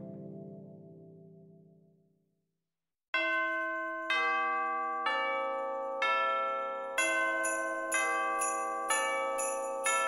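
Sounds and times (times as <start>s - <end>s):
bell-like chime chords: 3.2s - 10.0s.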